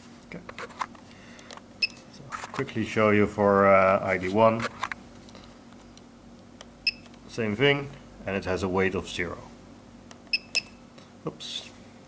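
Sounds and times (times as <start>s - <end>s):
low room noise: 0.0s - 12.0s
transmitter short beep: 10.3s - 10.8s.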